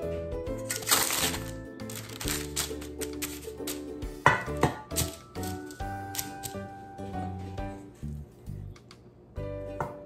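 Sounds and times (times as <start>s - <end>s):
background music: 0.0s - 8.7s, 9.3s - 10.0s
sharp paper crackles: 0.6s - 3.8s
paper liner crinkling: 0.6s - 3.9s.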